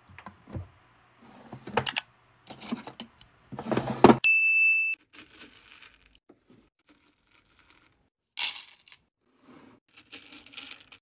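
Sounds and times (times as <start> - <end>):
wax beads clattering in metal scoop: 9.9 - 11.0.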